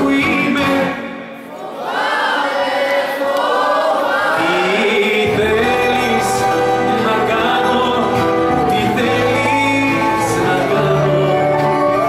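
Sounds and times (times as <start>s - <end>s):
crowd singing along with band: 0.0s - 12.0s
bass line: 5.2s - 12.0s.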